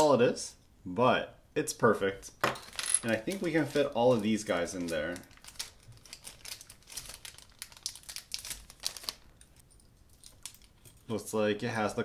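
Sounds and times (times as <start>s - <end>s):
plastic bag crinkling: 3.1s - 11.0s.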